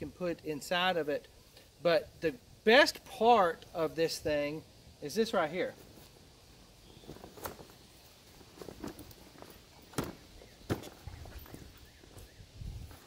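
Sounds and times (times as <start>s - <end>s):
fabric bag rustling: 6.9s - 10.8s.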